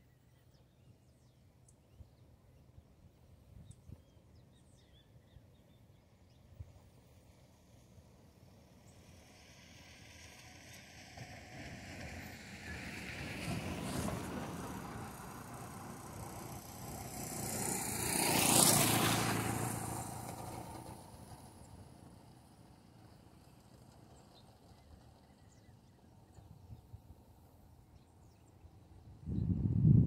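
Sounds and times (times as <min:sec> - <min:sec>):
road vehicle passing by: 0:07.3 - 0:30.0.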